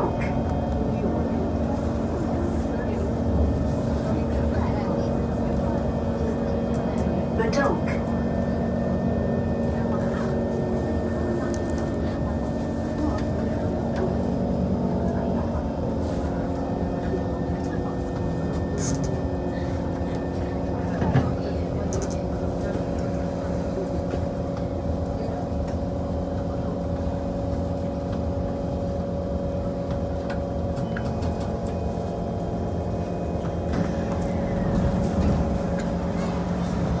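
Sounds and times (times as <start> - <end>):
train equipment humming: 0.0 - 37.0.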